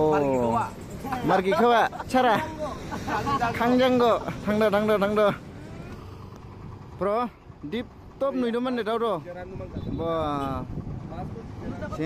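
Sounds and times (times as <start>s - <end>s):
street background noise: 0.0s - 12.0s
man laughing: 1.2s - 5.5s.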